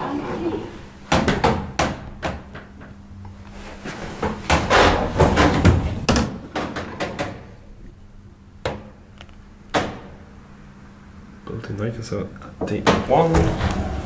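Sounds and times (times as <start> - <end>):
steady low hum: 0.0 - 14.0
door clicks and knocks: 5.4 - 7.5.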